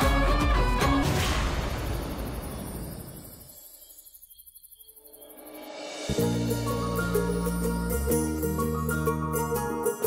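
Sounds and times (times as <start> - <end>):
music: 0.0 - 1.2, 5.5 - 10.0
crickets chirring: 1.7 - 5.8.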